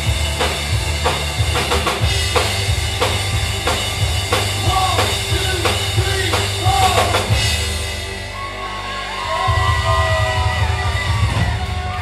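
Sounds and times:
heavy bass line: 0.0s - 12.0s.

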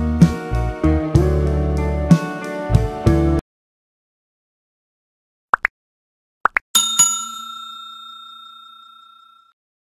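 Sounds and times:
bright bell chime: 6.8s - 9.6s.

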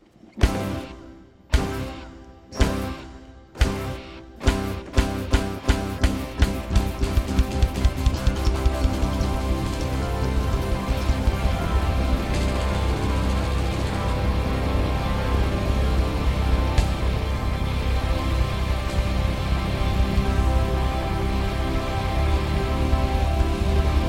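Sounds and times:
accented hits over held chord: 0.4s - 24.0s
heavy bass: 0.4s - 24.0s
live band music: 0.4s - 24.0s.

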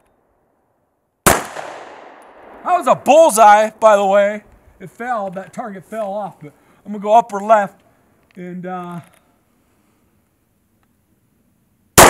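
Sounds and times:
pistol shot: 1.2s - 2.7s.

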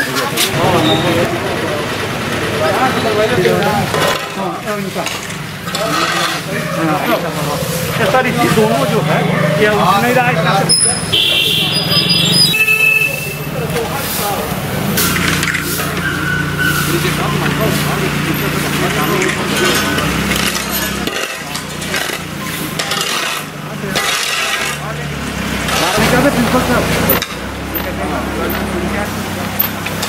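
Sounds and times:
people talking indistinctly: 0.0s - 30.0s
vehicle engine humming: 0.0s - 30.0s.

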